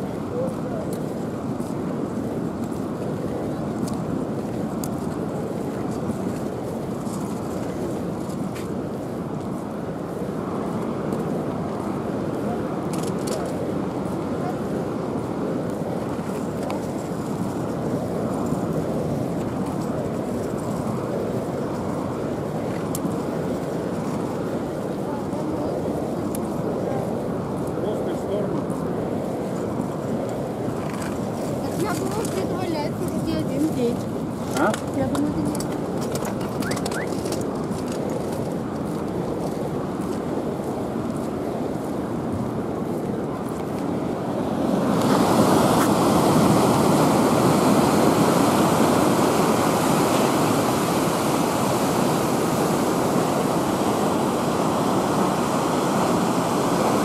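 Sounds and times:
murmur of many voices: 0:00.0 - 0:08.1, 0:21.2 - 0:37.3.

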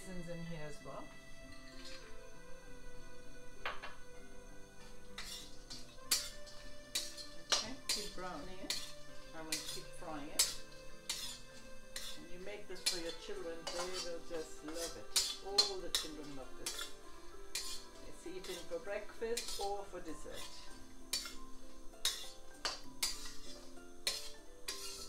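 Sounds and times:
metal spatula scraping a wok: 0:00.2 - 0:02.2, 0:04.8 - 0:25.0.

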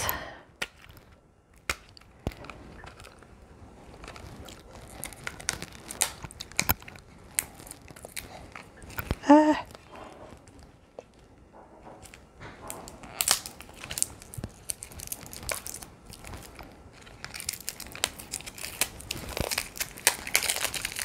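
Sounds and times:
wrapping crinkling and tearing: 0:00.0 - 0:21.0
person humming: 0:09.2 - 0:09.8.

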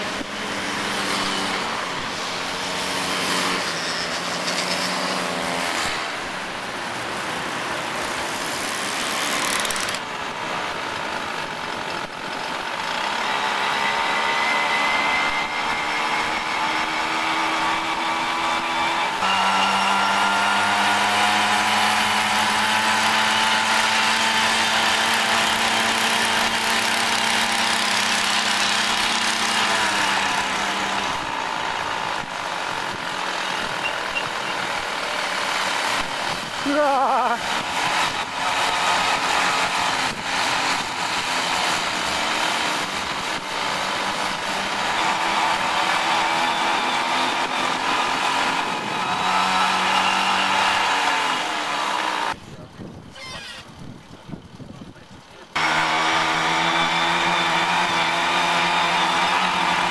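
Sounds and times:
small two-stroke engines running: 0:00.0 - 0:59.9.

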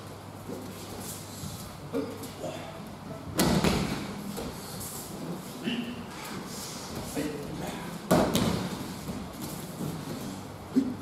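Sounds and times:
body slapping onto mats: 0:03.3 - 0:04.6, 0:08.1 - 0:10.2.

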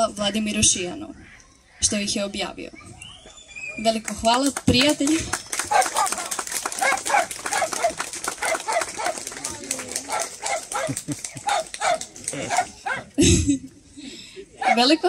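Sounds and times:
voices among clapping: 0:03.7 - 0:13.2
audience applauding: 0:04.0 - 0:13.1.

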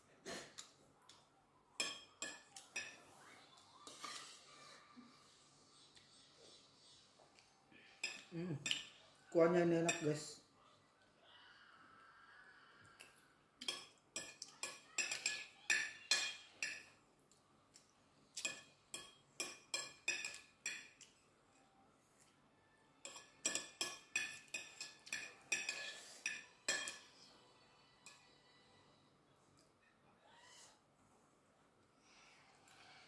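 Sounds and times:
cutlery clinking on a plate: 0:01.8 - 0:03.1, 0:08.0 - 0:09.0, 0:13.6 - 0:17.0, 0:18.4 - 0:21.2, 0:23.0 - 0:27.2.

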